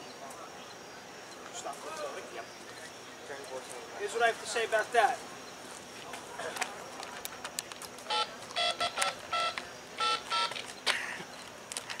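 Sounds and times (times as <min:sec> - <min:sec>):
short electronic beeps: 0:08.1 - 0:10.6.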